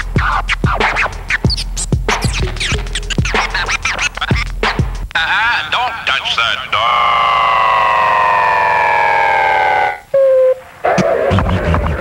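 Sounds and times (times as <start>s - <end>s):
music beat: 0.0s - 5.2s
siren-like tone sliding down: 6.9s - 10.6s.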